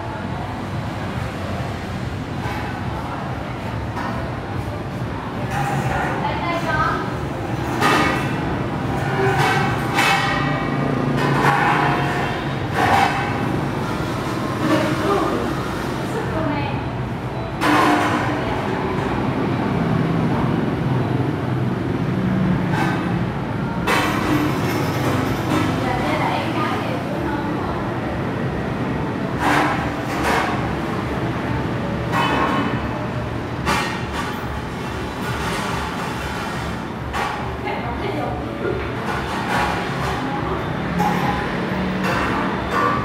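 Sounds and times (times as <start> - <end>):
metal stools clanking on tiles: 2.2 - 16.2, 17.6 - 19.4, 22.6 - 27.2, 29.2 - 43.0
metal stool scraping on tiles: 5.4 - 16.2, 29.3 - 31.2, 38.7 - 43.0.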